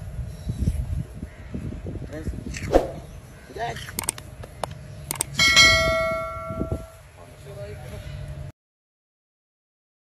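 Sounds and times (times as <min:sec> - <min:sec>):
mouse clicks: 0:03.9 - 0:05.3
bell ding: 0:05.4 - 0:07.0.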